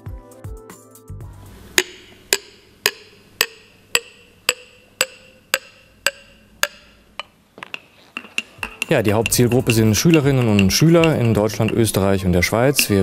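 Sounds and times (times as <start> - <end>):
teaspoon tapping ceramic mug: 1.8 - 13.0.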